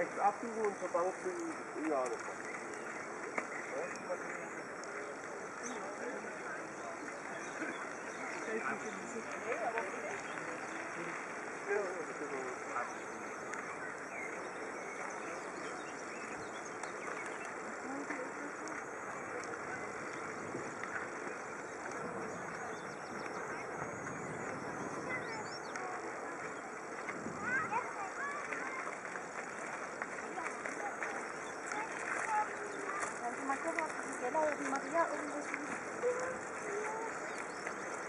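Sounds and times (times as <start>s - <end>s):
distant voices: 0.0s - 38.0s.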